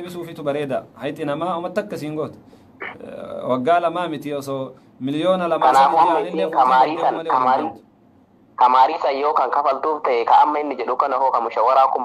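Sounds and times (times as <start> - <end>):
man talking: 0.0 - 7.8.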